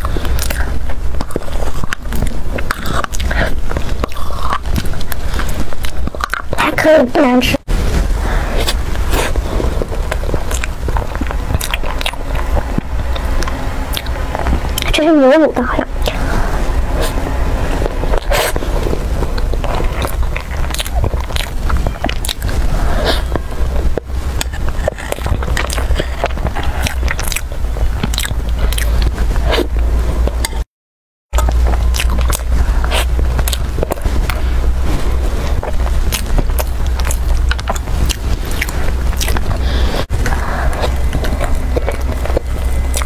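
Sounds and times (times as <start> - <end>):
wet chewing mouth clicks: 0.0 - 6.8, 8.5 - 15.0, 15.9 - 30.6, 31.4 - 43.0
steady low hum: 0.0 - 30.7, 31.3 - 43.0.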